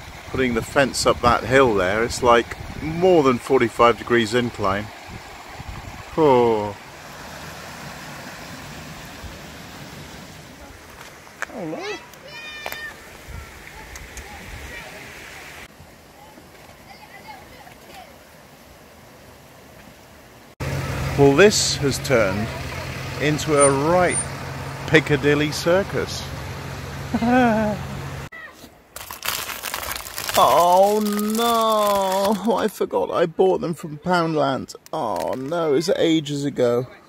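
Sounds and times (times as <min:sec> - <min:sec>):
mountain stream rushing: 0:00.0 - 0:32.8
plastic packaging crinkling: 0:29.0 - 0:32.7.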